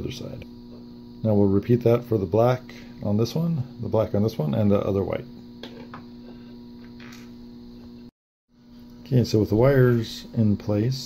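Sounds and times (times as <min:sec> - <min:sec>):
electrical hum of equipment: 0:00.0 - 0:11.0.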